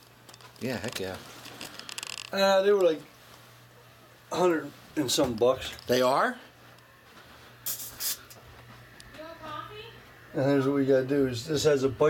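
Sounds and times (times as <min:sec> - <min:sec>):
faint low hum: 0:00.0 - 0:12.0
short hisses: 0:07.6 - 0:08.4.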